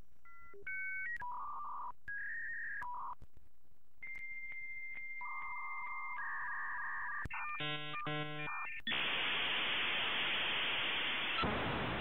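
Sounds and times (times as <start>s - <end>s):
buzzy electronic tone pulses: 7.4s - 11.4s
static hiss: 7.6s - 12.0s.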